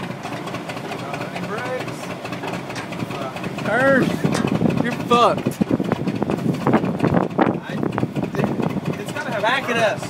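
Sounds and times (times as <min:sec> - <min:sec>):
truck rumbling and rattling: 0:00.0 - 0:10.0.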